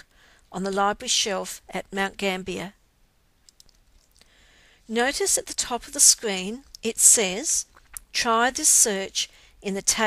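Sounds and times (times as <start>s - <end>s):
woman narrating: 0.0s - 2.8s, 4.9s - 10.0s
computer mouse clicks: 3.4s - 4.1s.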